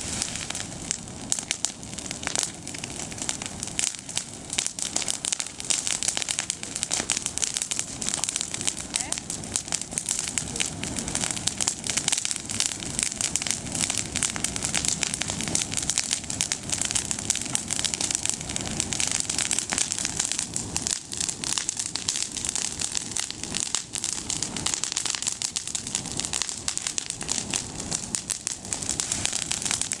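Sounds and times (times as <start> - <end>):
bonfire crackling and popping: 0.0 - 30.0.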